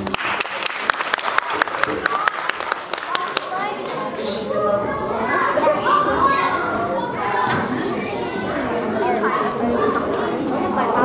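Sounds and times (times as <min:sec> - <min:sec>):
young children chattering: 0:01.7 - 0:11.0.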